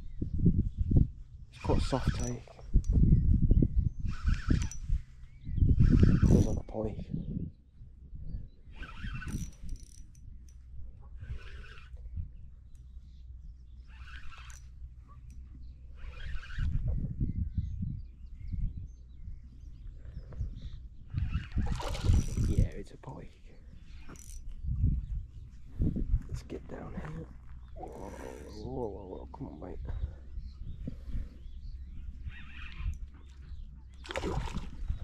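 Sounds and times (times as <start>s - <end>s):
wind rumbling on microphone: 0.0s - 35.0s.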